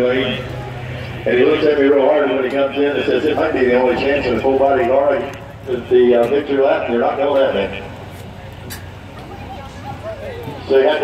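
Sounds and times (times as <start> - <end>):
crowd chatter: 0.0 - 11.0
low steady hum: 0.0 - 11.0.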